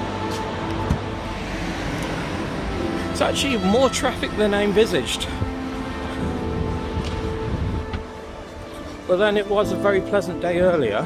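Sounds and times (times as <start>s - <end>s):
car traffic: 0.0s - 10.7s.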